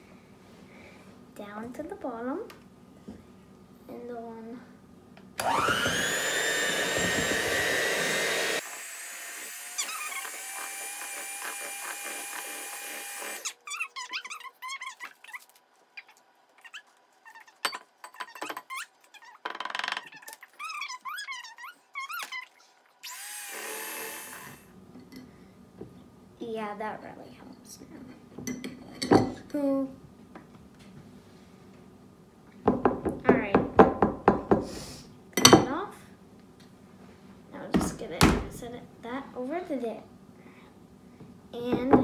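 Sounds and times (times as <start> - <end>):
electric hand mixer whirring: 5.4 - 13.5, 23.1 - 24.6.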